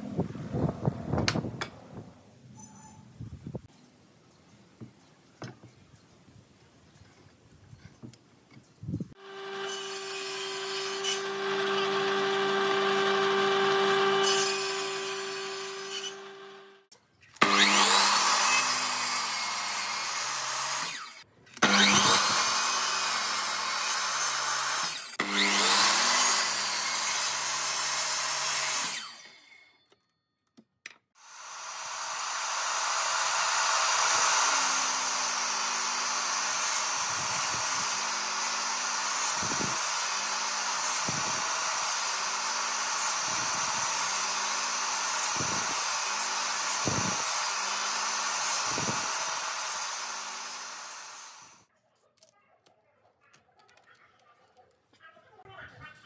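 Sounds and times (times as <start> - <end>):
miter saw cutting wood: 9.2 - 29.6, 31.2 - 51.7.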